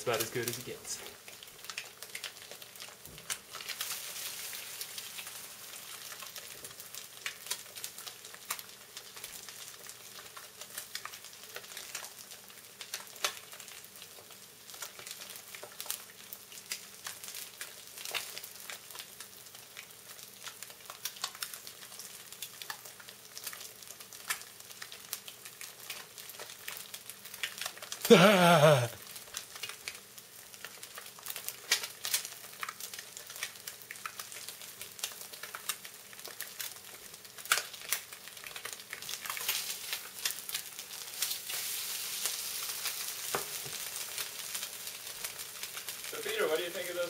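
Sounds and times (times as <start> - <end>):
eggs sizzling in a skillet: 0.0 - 47.0
fat crackling and popping: 0.0 - 47.0.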